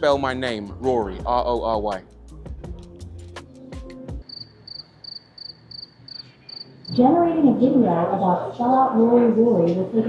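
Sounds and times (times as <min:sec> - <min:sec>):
background music with a beat: 0:00.1 - 0:04.3.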